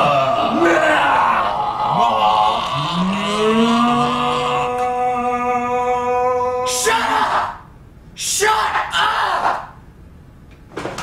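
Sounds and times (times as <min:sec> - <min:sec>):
men screaming: 0:00.0 - 0:09.8.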